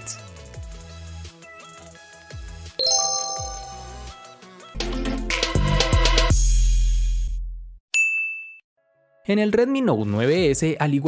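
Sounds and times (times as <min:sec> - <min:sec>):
bright chime ding: 0:02.8 - 0:04.2
background music: 0:02.8 - 0:05.8.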